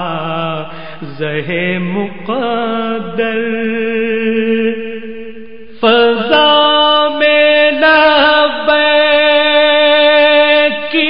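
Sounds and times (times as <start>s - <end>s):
wordless devotional vocal chanting: 0.0s - 11.0s.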